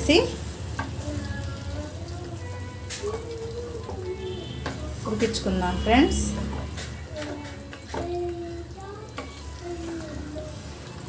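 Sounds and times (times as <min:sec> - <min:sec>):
chicken sizzling in sauce: 0:00.0 - 0:11.0
spatula stirring: 0:00.5 - 0:11.0.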